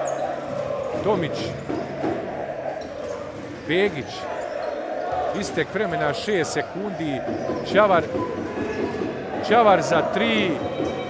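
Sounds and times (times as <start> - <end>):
steady background din: 0.0 - 11.0
voices in a hall: 0.0 - 11.0.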